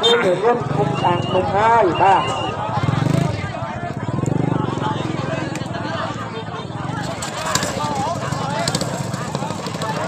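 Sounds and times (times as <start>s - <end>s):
people's voices: 0.0s - 10.0s
small engine running: 6.9s - 10.0s.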